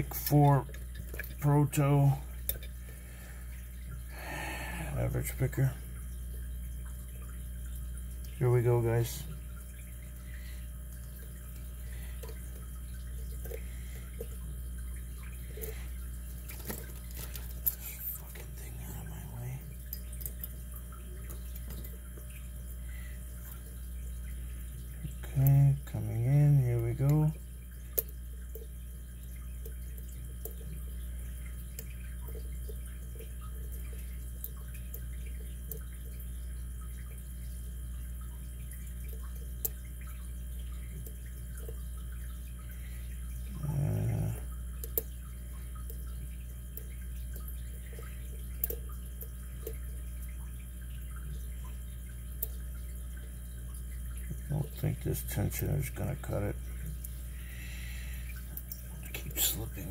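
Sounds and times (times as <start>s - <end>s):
steady low hum: 0.0s - 59.9s
man murmuring: 43.5s - 44.4s, 59.0s - 59.9s.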